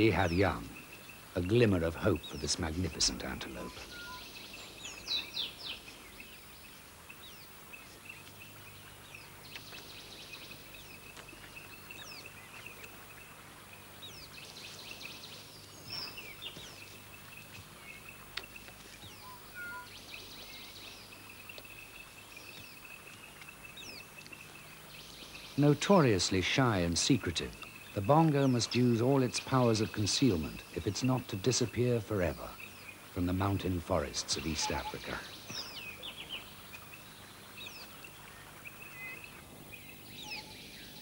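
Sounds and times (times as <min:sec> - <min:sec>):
bird chirps and calls: 0:00.0 - 0:06.5, 0:14.0 - 0:22.9, 0:23.6 - 0:41.0.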